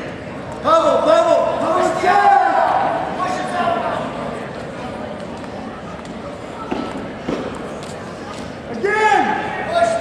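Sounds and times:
faint indistinct voices: 0.0 - 10.0
loud shout: 1.1 - 3.9, 8.8 - 10.0.

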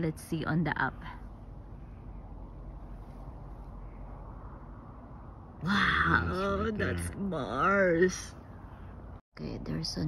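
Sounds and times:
woman speaking: 0.0 - 1.3, 5.6 - 8.4, 9.3 - 10.0.

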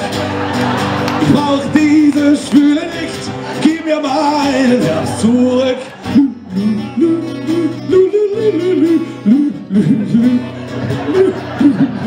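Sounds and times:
acoustic guitar: 0.0 - 12.0
man singing: 1.1 - 12.0.

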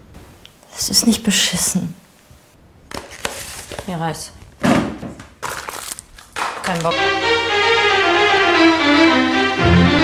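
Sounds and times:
woman speaking: 0.7 - 2.0, 3.8 - 4.4, 6.6 - 7.1
handling noise rustling: 2.9 - 4.1.

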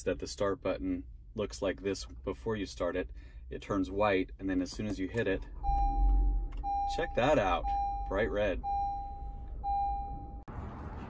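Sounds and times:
low steady rumble: 0.0 - 11.0
car warning chime beeps: 5.2 - 10.5.

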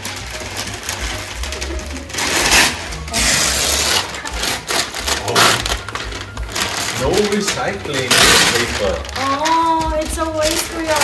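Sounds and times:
paper crumpling: 0.0 - 11.0
wrapping paper tearing: 0.0 - 11.0.

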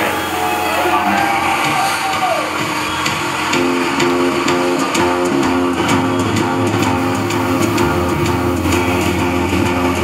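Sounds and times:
distorted electric guitar chords: 0.0 - 10.0
falling pitched glide: 0.0 - 10.0.

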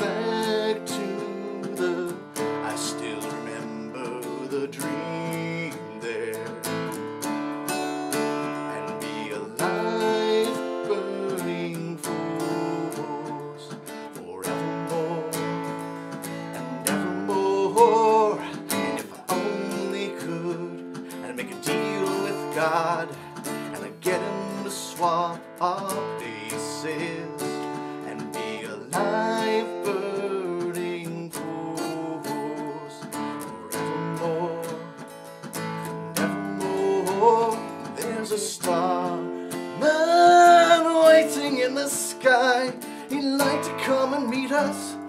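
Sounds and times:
acoustic guitar strumming: 0.0 - 45.0
man singing: 0.0 - 45.0.

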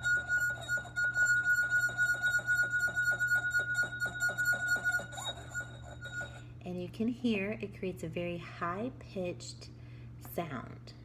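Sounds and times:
glass rim singing tone: 0.0 - 6.5.

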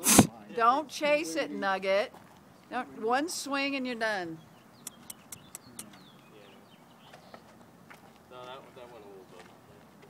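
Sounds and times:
bird chirps: 4.3 - 7.5
sharp clicks: 4.8 - 5.9.

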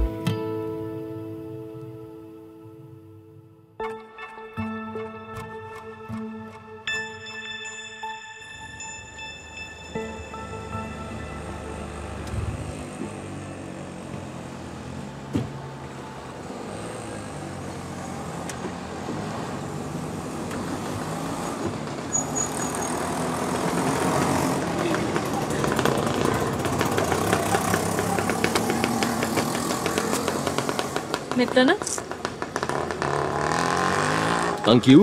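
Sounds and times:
auto-rickshaw engine running: 10.0 - 35.0.

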